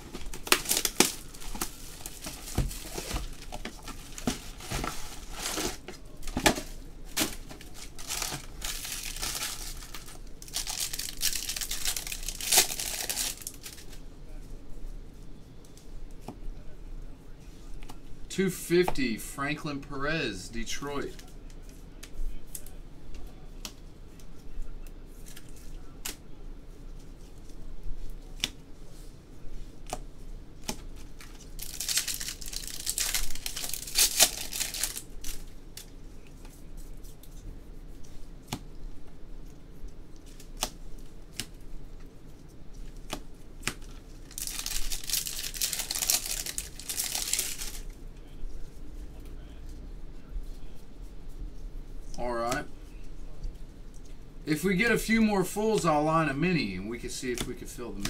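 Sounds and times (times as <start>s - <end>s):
foil wrapper tearing and crinkling: 0.1s - 14.0s, 31.2s - 35.9s, 43.6s - 47.9s.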